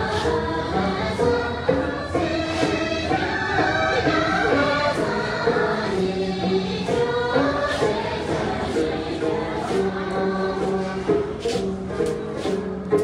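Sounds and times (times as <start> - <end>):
group singing in unison: 0.0 - 13.0.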